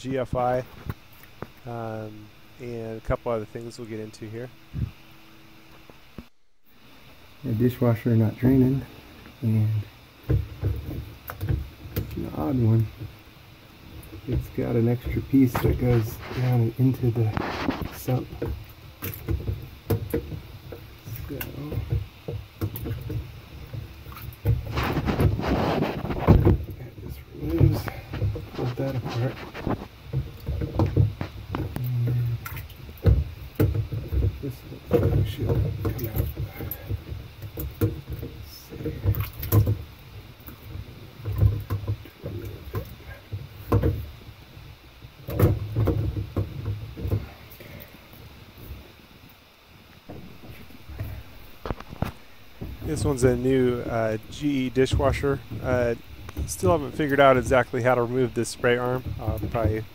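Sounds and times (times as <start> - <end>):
rumbling handling noise: 0.0 - 59.9.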